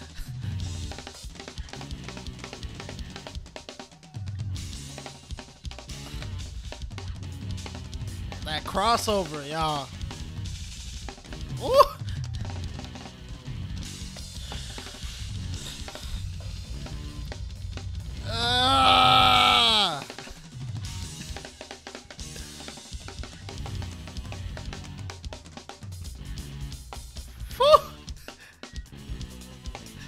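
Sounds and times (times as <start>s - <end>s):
fast drum kit playing: 0.0s - 30.0s.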